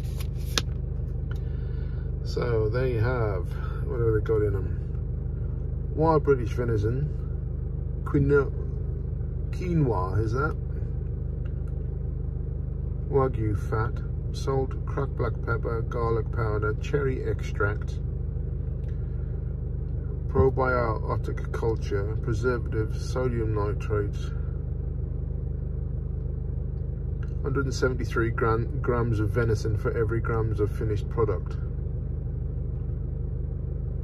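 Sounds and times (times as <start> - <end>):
car engine idling: 0.0 - 34.0.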